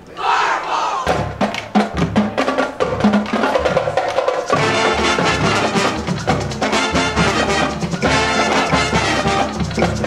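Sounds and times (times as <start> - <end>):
crowd shouting together: 0.0 - 1.2
drum hits: 1.0 - 10.0
marching band playing: 1.0 - 10.0
sustained horn chords: 4.6 - 9.6.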